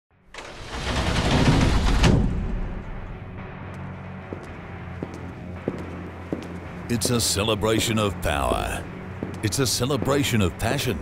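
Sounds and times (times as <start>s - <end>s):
metal sliding door rolling: 0.3s - 2.8s.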